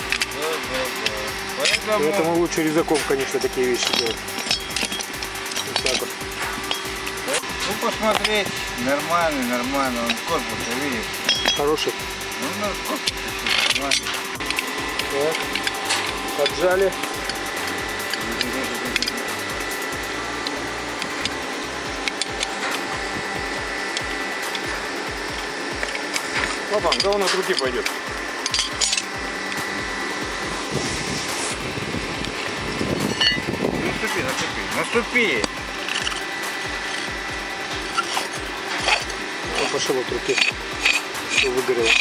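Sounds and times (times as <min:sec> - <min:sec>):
background music with low beat: 0:00.0 - 0:42.0
rusted threads grating: 0:00.0 - 0:42.0
steady mechanical hum: 0:00.0 - 0:42.0.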